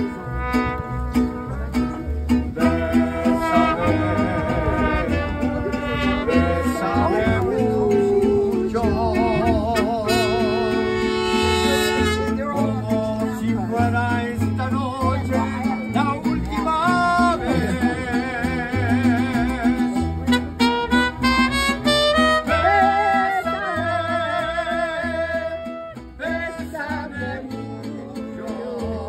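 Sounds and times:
mariachi band playing: 0.0 - 29.0
person singing with vibrato: 22.4 - 29.0.

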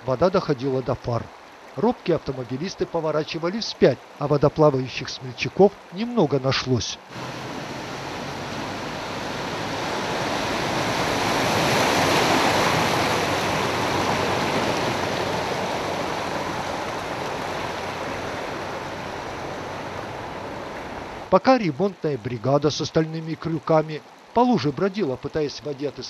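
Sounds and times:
floodwater rushing over asphalt: 0.0 - 26.0.

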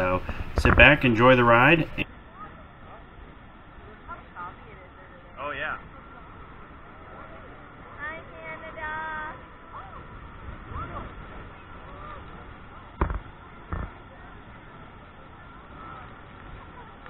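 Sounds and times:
steady muffled noise: 0.0 - 17.0
sharp knocks: 13.0 - 13.9.

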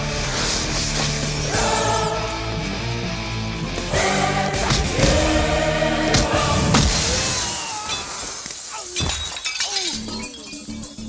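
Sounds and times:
background music: 0.0 - 7.6, 9.6 - 11.0
glass shattering: 6.8 - 11.0
glass shards tinkling: 7.8 - 11.0.

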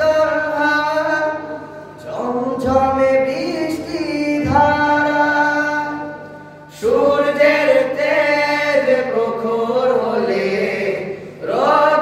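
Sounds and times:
young men singing together unaccompanied: 0.0 - 12.0.

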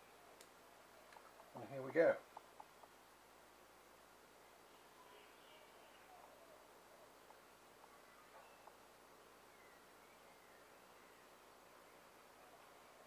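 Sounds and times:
faint room hiss: 0.0 - 13.0
faint ticks: 0.4 - 3.0
faint high chirps: 4.6 - 13.0.

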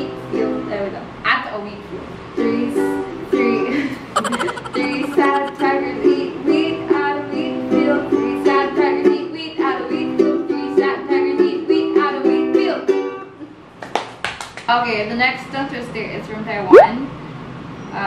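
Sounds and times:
woman singing: 4.3 - 12.8.

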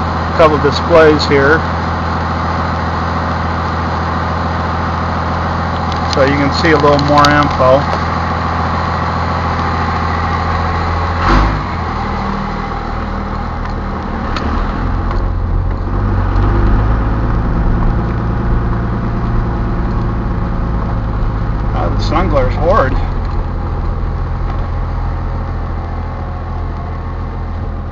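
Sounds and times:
diesel engine idling and pulling away: 0.0 - 27.9.

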